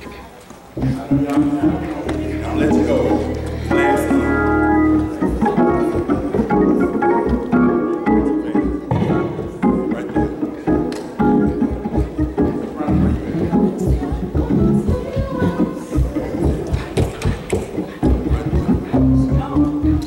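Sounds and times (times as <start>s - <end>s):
church band with organ: 0.7s - 20.0s.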